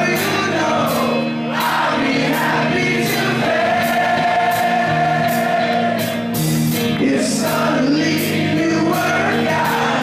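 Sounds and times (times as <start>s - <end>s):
sustained band chords: 0.0s - 10.0s.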